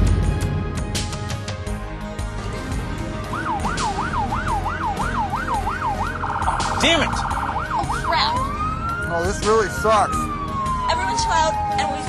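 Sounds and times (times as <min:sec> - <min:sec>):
police siren yelping: 0:03.2 - 0:12.0.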